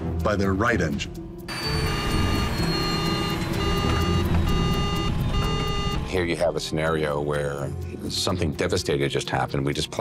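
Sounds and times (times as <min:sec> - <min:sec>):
cockpit warning alarm beeps: 0:01.5 - 0:06.2.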